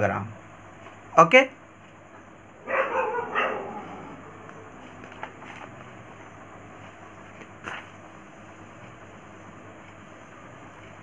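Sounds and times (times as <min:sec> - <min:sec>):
animal call: 0:02.6 - 0:04.7.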